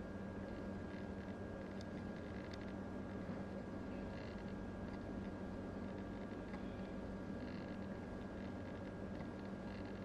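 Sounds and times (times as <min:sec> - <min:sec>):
focus motor whir: 0:00.0 - 0:10.0
quiet steady hum: 0:00.0 - 0:10.0.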